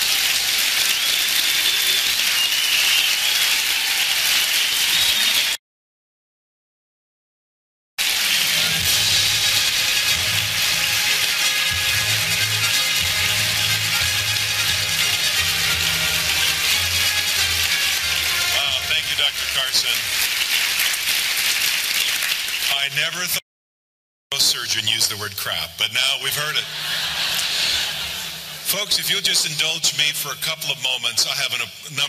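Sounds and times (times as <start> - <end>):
audience applauding: 0.0 - 5.6, 8.0 - 22.9, 26.4 - 29.7
music playing: 8.0 - 20.8.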